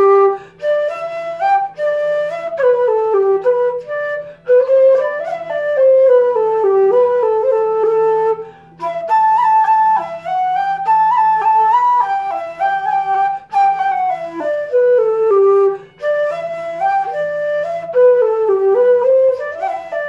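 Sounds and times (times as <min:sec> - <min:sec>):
wooden flute melody: 0:00.0 - 0:20.0.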